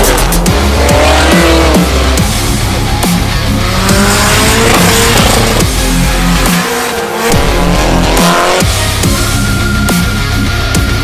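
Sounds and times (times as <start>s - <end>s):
car engine revving: 0.0s - 9.5s
music with heavy beat: 0.0s - 11.0s.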